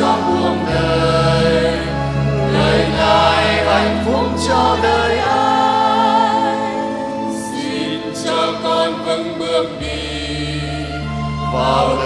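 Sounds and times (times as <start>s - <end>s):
church choir singing a hymn: 0.0s - 12.0s.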